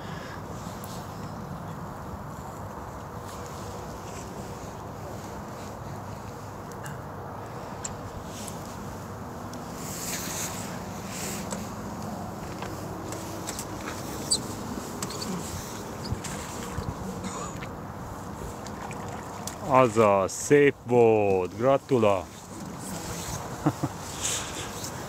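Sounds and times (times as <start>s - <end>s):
wind rumble on microphone: 13.4s - 19.5s.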